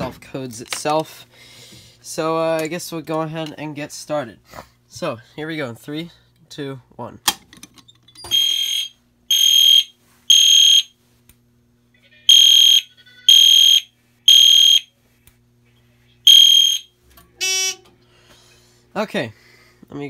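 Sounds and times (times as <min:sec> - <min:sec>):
fire alarm horn blasts: 0:08.3 - 0:11.0, 0:12.3 - 0:14.9, 0:16.3 - 0:17.9.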